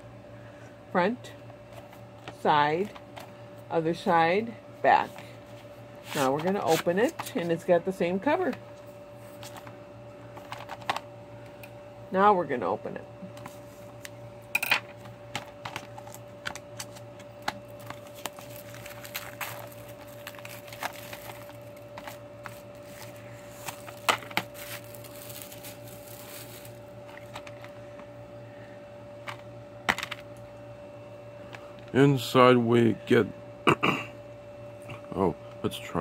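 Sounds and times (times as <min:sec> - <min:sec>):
faint electrical hum: 0:00.0 - 0:36.0
shrink-wrap crinkling: 0:15.3 - 0:27.8.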